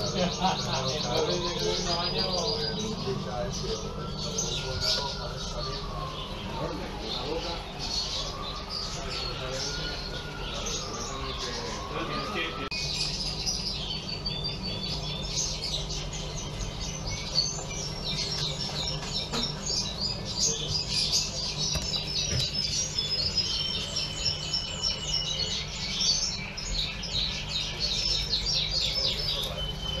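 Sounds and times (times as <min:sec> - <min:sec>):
small birds chirping: 0:00.0 - 0:30.0
steady low hum: 0:00.0 - 0:30.0.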